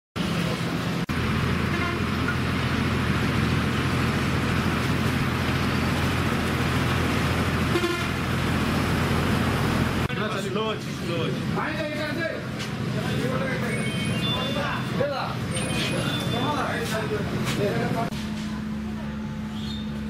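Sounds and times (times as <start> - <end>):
diesel engine running: 0.2 - 20.0.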